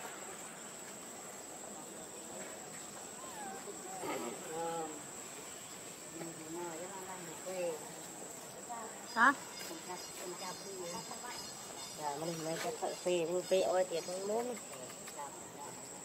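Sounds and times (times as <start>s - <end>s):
insects droning: 0.0s - 16.0s.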